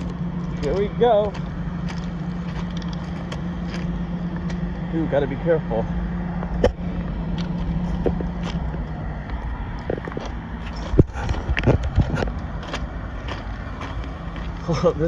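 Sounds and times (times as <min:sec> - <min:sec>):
footsteps crunching on gravel: 0:00.0 - 0:15.0
low wind rumble on microphone: 0:00.0 - 0:15.0
steady low hum: 0:00.0 - 0:15.0.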